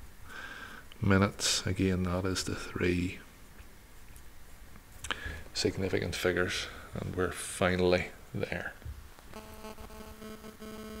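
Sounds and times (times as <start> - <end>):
faint pitched buzz: 9.2 - 11.0.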